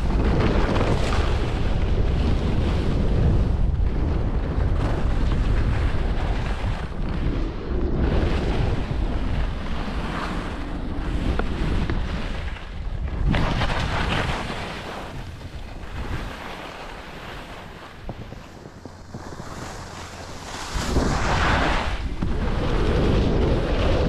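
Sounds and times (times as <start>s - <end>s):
skis scraping over snow: 0.0s - 24.0s
wind rushing over microphone: 0.0s - 24.0s.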